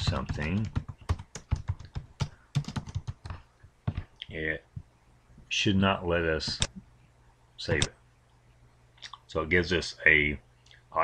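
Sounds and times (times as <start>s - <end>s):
computer keyboard typing: 0.0s - 4.1s.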